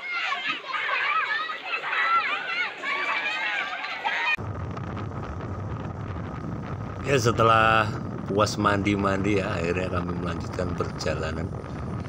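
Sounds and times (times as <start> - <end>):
wind buffeting microphone: 4.4 - 12.0.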